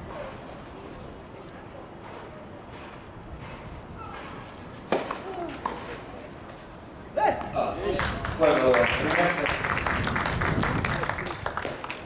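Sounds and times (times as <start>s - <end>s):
tennis racket hitting ball: 2.8s - 6.0s.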